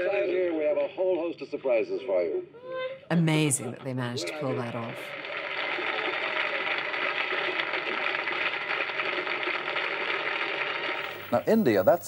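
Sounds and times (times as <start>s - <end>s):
studio audience applauding: 4.2s - 11.9s.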